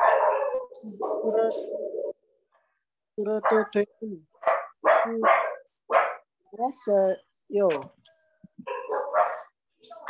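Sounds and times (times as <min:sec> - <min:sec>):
dog barking: 0:00.0 - 0:01.4, 0:03.4 - 0:03.8, 0:04.4 - 0:06.3, 0:08.6 - 0:09.6.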